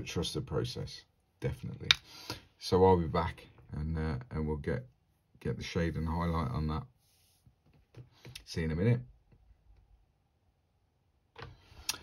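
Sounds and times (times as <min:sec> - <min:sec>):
faint room sound: 0:00.0 - 0:12.0.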